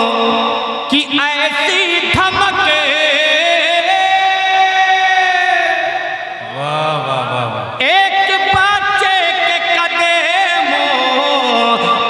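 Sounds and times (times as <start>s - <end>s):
man singing into microphone: 0.0s - 12.0s.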